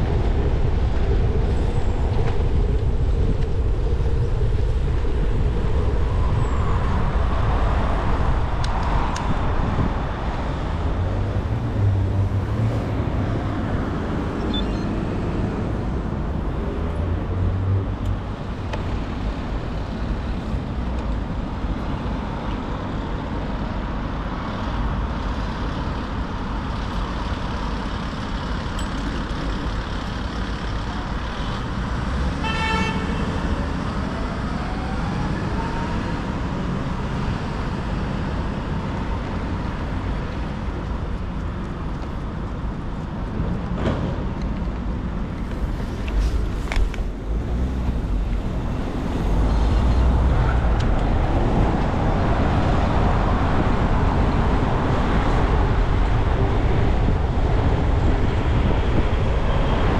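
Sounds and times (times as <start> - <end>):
road traffic rumble: 0.0 - 59.9.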